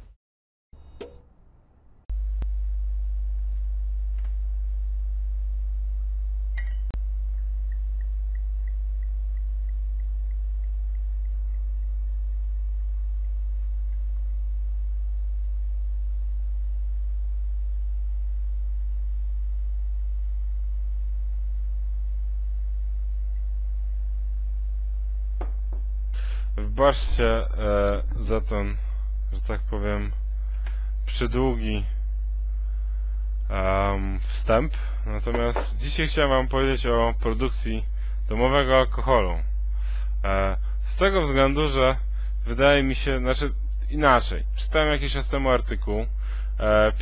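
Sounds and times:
very low hum: 0.8 - 47.0
click: 1.0 - 1.3, 3.4 - 4.4.

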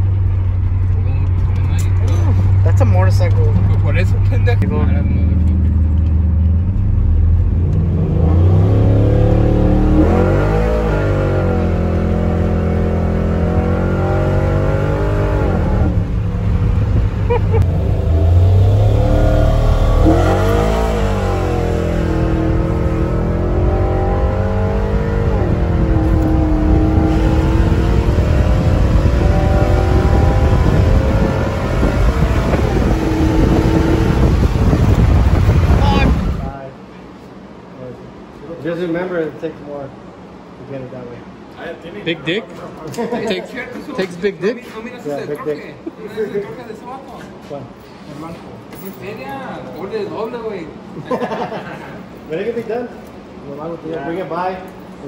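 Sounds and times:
truck engine accelerating: 0.0 - 36.6
road rumble: 0.0 - 55.0.

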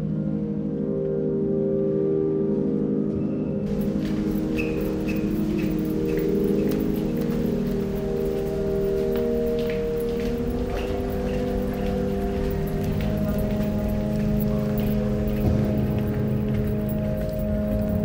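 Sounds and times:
high chirping blips: 4.2 - 6.7.

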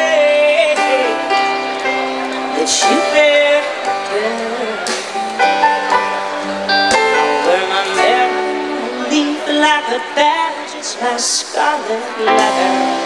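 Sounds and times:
lead guitar with bending notes: 0.0 - 13.0
live band playing blues: 0.0 - 13.0.

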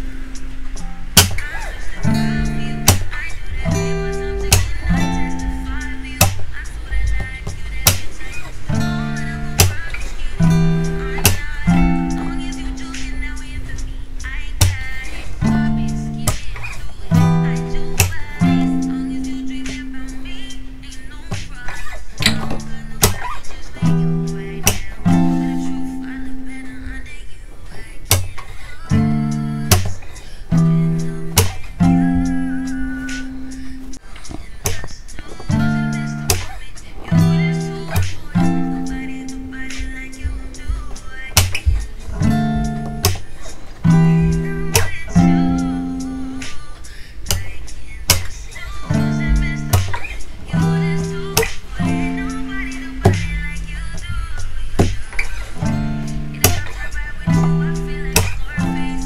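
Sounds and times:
acoustic guitar strumming chords: 0.0 - 59.0
percussive hits on guitar strings: 1.1 - 1.5, 2.8 - 6.4, 8.7 - 9.8, 10.4 - 13.1, 17.2 - 19.9, 22.2 - 25.5, 28.1 - 28.3, 28.9 - 30.0, 30.6 - 33.4, 35.5 - 36.6, 41.3 - 46.6, 48.1 - 48.3, 48.9 - 54.0, 54.8 - 59.0.

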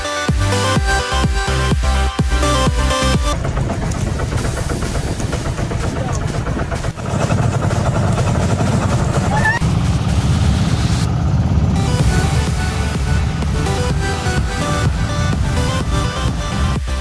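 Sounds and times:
music: 0.0 - 17.0
boat engine rumbling: 0.5 - 17.0.

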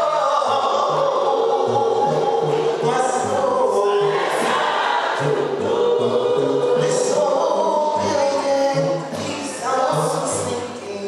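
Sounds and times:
gospel choir singing: 0.0 - 11.0.

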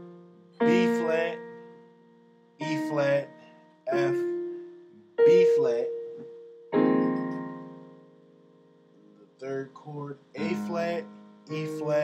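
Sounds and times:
digital piano note: 0.0 - 9.1, 10.4 - 12.0
digital piano chord: 0.0 - 9.2, 10.4 - 12.0.

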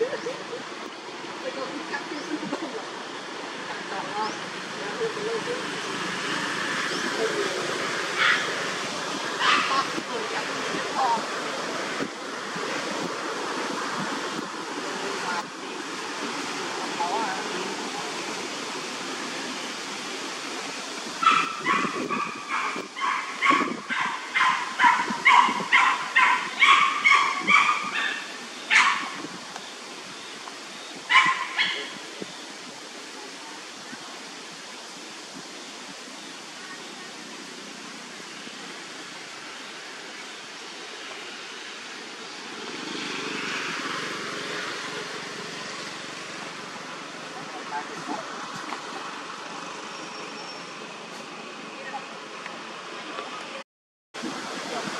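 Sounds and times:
steady outdoor noise: 0.0 - 53.6, 54.2 - 54.9.

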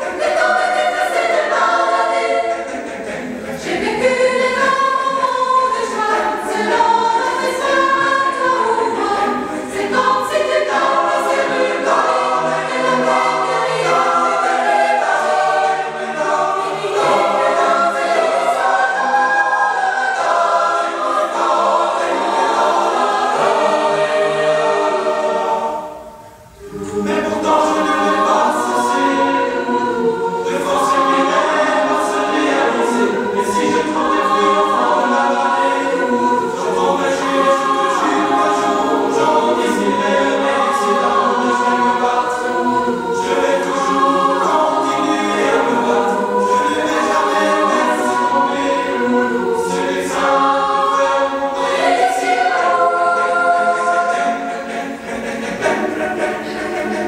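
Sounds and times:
choir singing sustained chords: 0.0 - 57.0.

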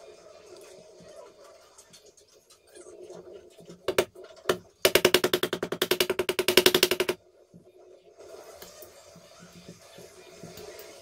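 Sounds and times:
small hammer tapping fret wire: 4.9 - 7.2.

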